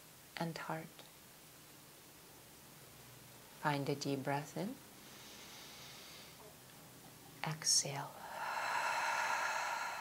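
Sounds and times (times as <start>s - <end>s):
woman exhaling deeply: 8.2s - 10.0s.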